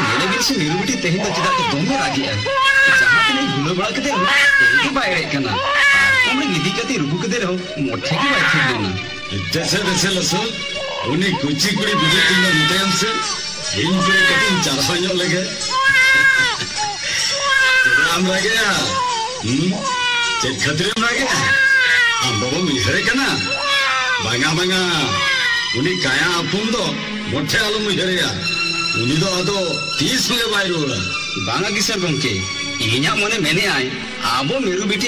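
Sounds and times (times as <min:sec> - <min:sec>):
person speaking: 0:00.0 - 0:27.0.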